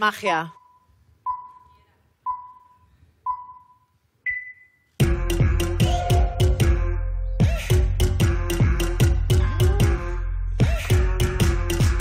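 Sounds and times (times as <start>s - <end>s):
electronic countdown beeps: 0.5s - 4.9s.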